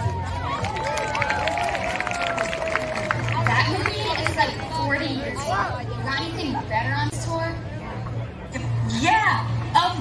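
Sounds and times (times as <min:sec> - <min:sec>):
music and voices over loudspeaker: 0:03.1 - 0:10.0.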